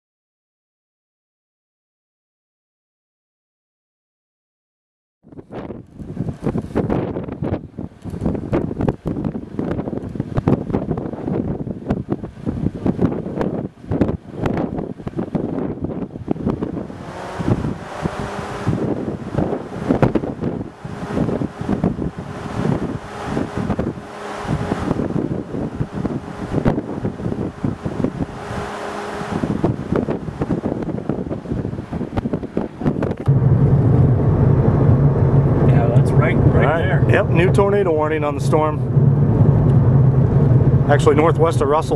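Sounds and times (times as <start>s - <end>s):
wind buffeting microphone: 5.2s - 41.9s
road and engine noise in car: 5.3s - 41.9s.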